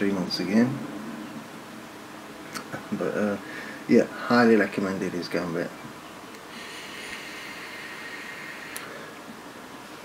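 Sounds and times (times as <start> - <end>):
hiss of e-cigarette drag: 6.5 - 9.0.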